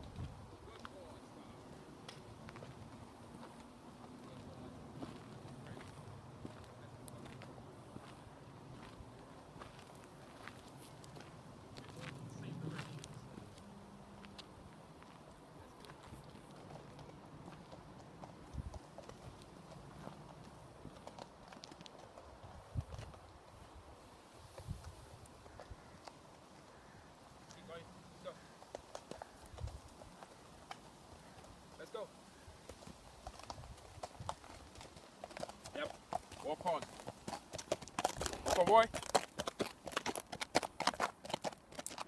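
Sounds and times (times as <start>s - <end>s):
horse hooves on gravel: 0.0s - 23.8s, 24.4s - 42.0s
person speaking: 38.4s - 39.0s.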